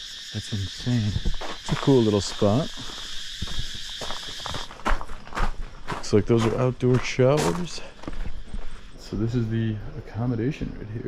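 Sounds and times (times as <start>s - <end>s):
high-pitched insect chorus: 0.0s - 11.0s
footsteps on a path: 0.6s - 9.2s.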